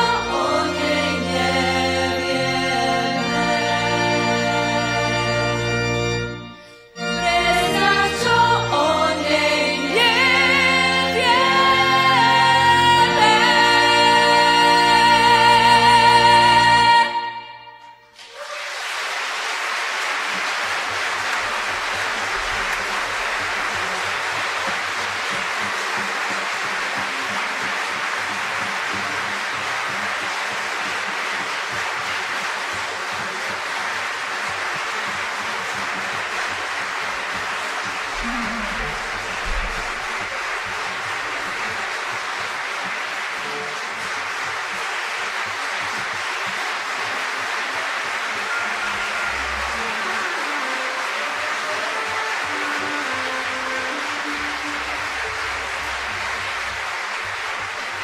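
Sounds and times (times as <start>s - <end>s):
audience applauding: 0.0s - 58.0s.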